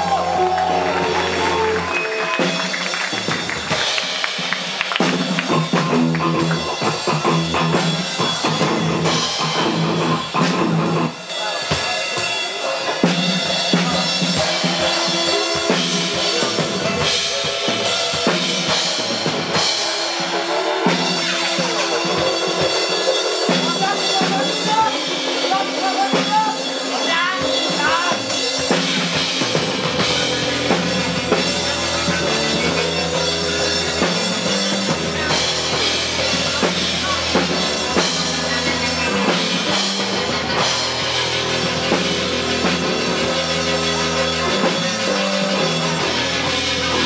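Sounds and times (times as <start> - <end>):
live rock band playing: 0.0 - 47.0.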